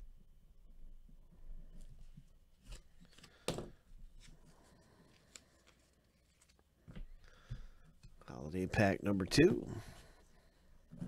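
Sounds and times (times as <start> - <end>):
handling trading cards: 2.6 - 7.7.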